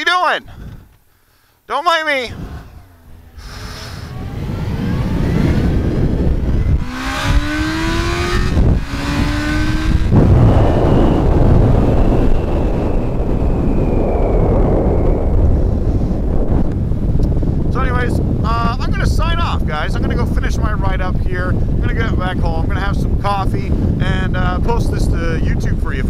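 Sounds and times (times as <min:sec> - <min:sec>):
wind rushing on microphone: 0:00.4 - 0:01.0, 0:02.2 - 0:26.0
motorcycle engine accelerating: 0:02.3 - 0:18.6.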